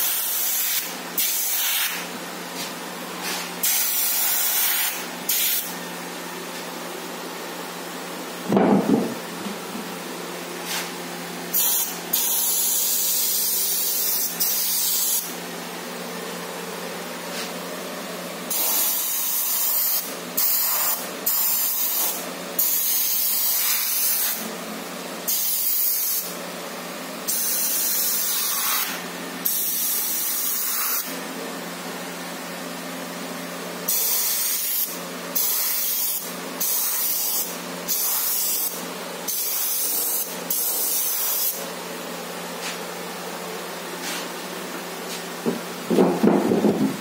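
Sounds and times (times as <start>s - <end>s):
airbrush spraying hiss: 0.0s - 2.1s, 3.2s - 5.7s, 11.5s - 15.3s, 18.5s - 24.4s, 25.3s - 26.3s, 27.3s - 31.1s, 33.9s - 41.6s.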